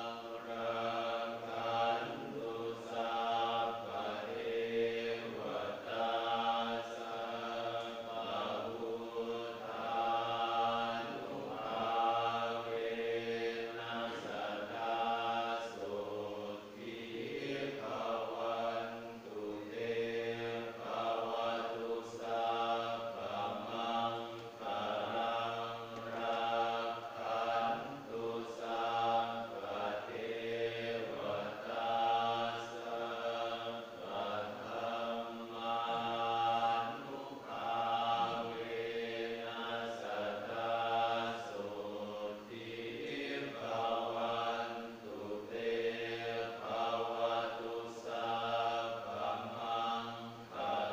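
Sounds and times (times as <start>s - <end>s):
monks chanting in monotone: 0.0s - 50.9s.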